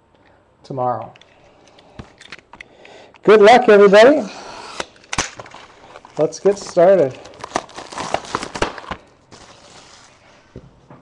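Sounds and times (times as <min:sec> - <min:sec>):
packaging tearing and crinkling: 0:04.8 - 0:10.1.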